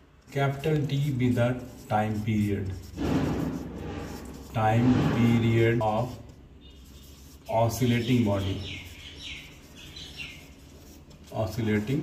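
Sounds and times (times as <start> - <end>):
marker squeaking on whiteboard: 0.0 - 12.0.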